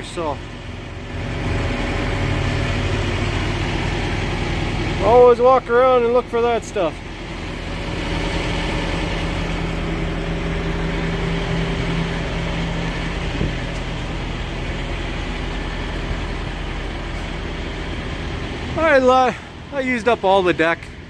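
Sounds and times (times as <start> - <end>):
diesel engine idling: 0.0 - 21.0.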